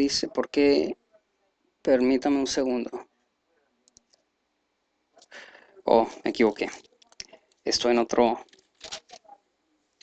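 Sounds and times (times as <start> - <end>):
faint clicks: 3.8 - 4.3.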